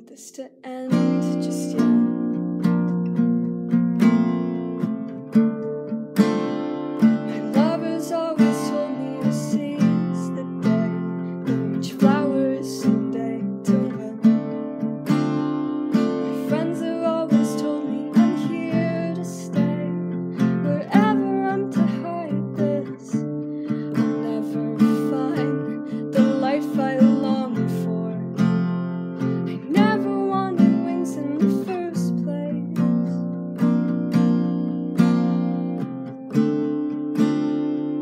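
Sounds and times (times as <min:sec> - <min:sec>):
person singing: 0:00.0 - 0:02.4, 0:07.2 - 0:14.5, 0:16.2 - 0:28.4, 0:29.4 - 0:33.3
strummed acoustic guitar: 0:00.2 - 0:38.0.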